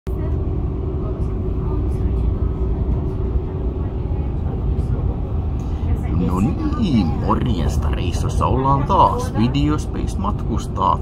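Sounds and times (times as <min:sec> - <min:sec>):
train rumbling inside carriage: 0:00.1 - 0:11.0.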